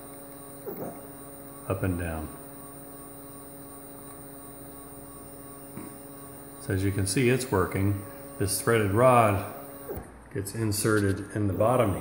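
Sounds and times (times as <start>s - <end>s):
stepper motor electrical hum: 0.0s - 12.0s.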